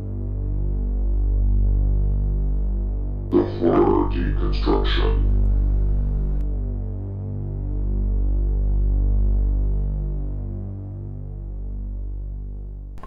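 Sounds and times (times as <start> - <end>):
low pulsing synthesizer drone: 0.0 - 13.0.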